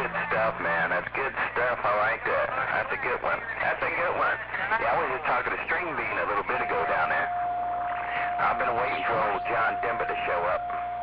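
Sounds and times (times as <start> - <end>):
speech over cb radio: 0.0 - 7.3, 7.9 - 10.8.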